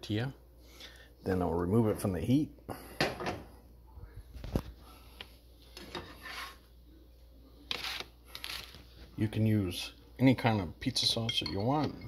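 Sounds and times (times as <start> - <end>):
rubbing and scraping: 5.9 - 6.6.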